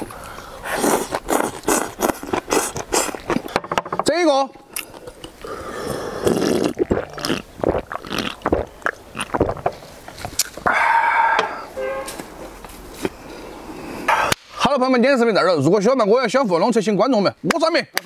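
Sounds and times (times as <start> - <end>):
person gulping from a can: 4.7 - 10.8
held vocal sound: 10.6 - 11.8.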